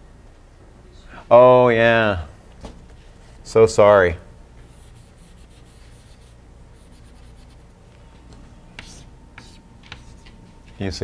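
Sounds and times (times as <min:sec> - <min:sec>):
chalk scratching on blackboard: 0:04.7 - 0:07.6, 0:08.8 - 0:10.4.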